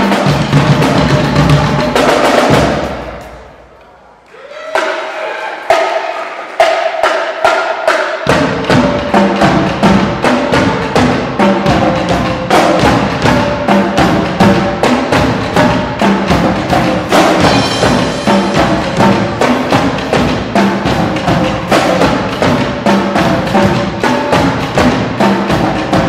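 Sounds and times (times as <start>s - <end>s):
marching bass drums: 0.0s - 3.5s, 8.2s - 26.0s
snare drums: 0.0s - 3.9s, 4.6s - 26.0s
tenor drums: 0.0s - 26.0s.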